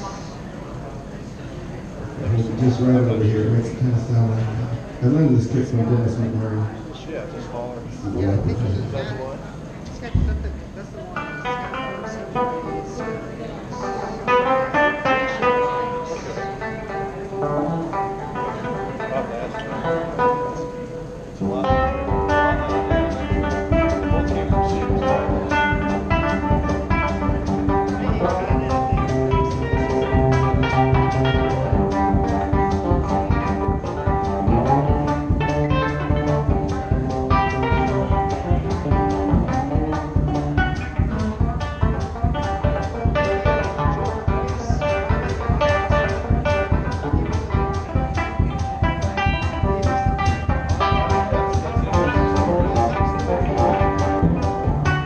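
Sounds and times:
electric guitar playing: 0:02.2 - 0:55.0
bass drum beat: 0:10.0 - 0:10.7, 0:21.4 - 0:55.0.

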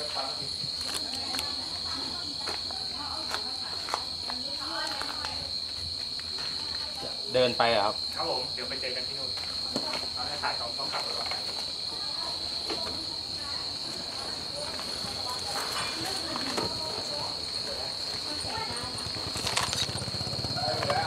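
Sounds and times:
crickets trilling: 0:00.0 - 0:21.0
faint voices: 0:06.3 - 0:21.0.

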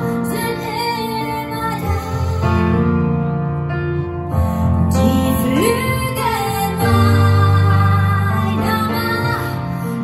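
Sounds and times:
woman singing ballad: 0:00.0 - 0:03.0, 0:04.9 - 0:10.0
piano accompaniment: 0:00.0 - 0:10.0.

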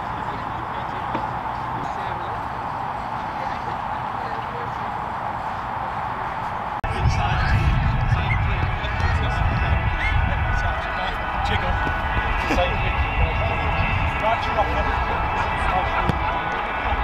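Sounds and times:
distant indistinct voices: 0:00.0 - 0:17.0
wind rumbling on microphone: 0:05.0 - 0:17.0.

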